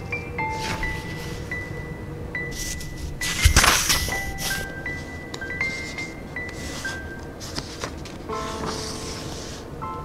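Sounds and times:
book pages turning: 0:00.5 - 0:01.6, 0:02.5 - 0:09.7.

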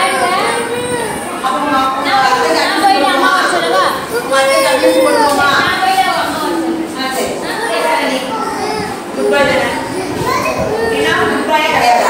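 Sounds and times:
young children chattering: 0:00.0 - 0:12.0.

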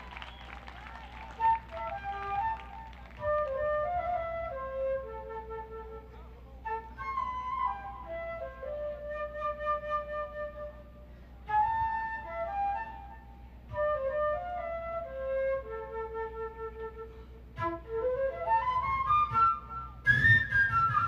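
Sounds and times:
flute melody: 0:00.0 - 0:21.0.

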